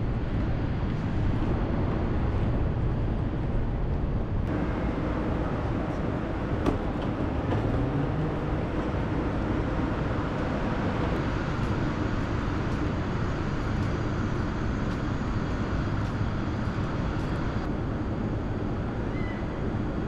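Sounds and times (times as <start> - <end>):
city background rumble: 0.0 - 20.0
faint footsteps: 11.2 - 17.6.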